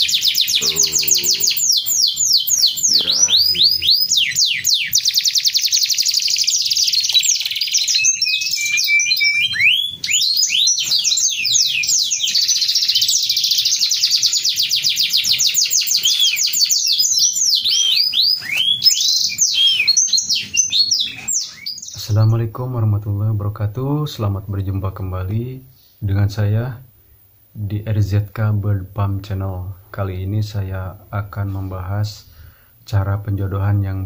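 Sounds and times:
canary singing fast trills: 0:00.0 - 0:22.5.

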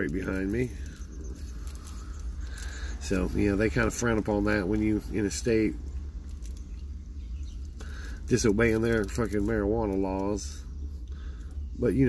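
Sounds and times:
low hum: 0:00.0 - 0:12.0
rolling paper rustling: 0:07.8 - 0:10.6.

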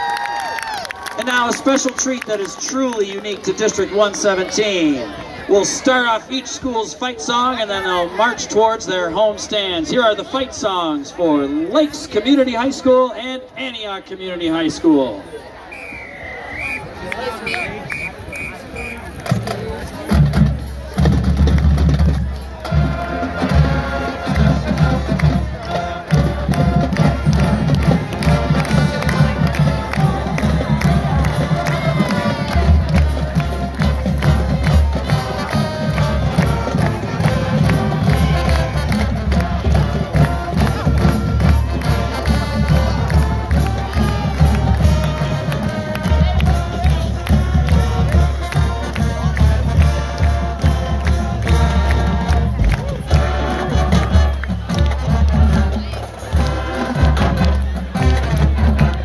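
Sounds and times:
crowd cheering: 0:00.0 - 0:06.5, 0:15.2 - 0:59.0
high whistle blasts: 0:15.7 - 0:19.1
marching band playing: 0:15.7 - 0:59.0
drums: 0:17.6 - 0:59.0.

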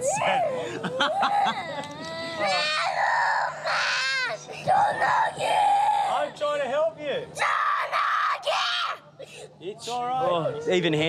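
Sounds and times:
boy screaming and crying: 0:00.0 - 0:06.4, 0:07.4 - 0:09.1.

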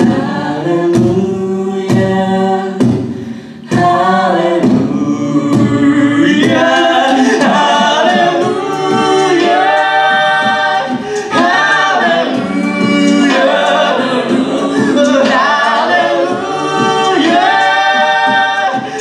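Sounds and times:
a cappella group singing: 0:00.0 - 0:19.0.

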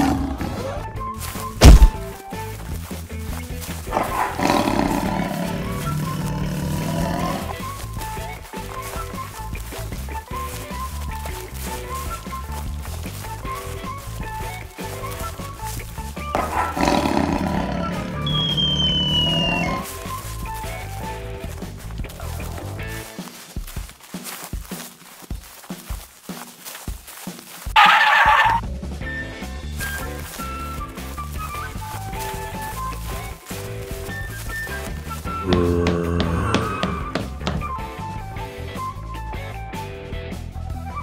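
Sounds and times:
cartoon background music: 0:00.0 - 0:23.1, 0:27.8 - 0:41.0.

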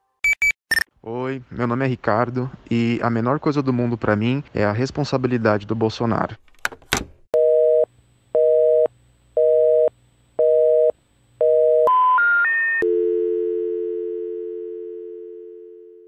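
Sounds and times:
dial tone: 0:07.4 - 0:16.0.

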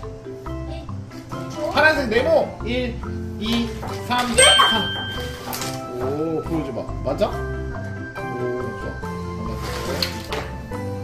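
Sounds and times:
background music: 0:00.0 - 0:11.0
bright bell-like ding: 0:04.4 - 0:05.6.

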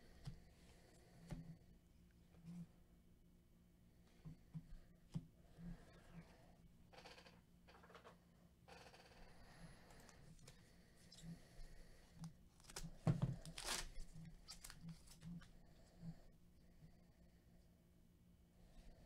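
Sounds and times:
cards rustling: 0:12.5 - 0:15.3
wrapper crinkling and tearing: 0:13.4 - 0:14.8.

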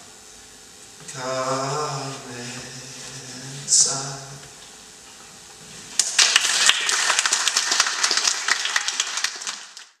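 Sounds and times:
audience applause: 0:06.0 - 0:10.0.

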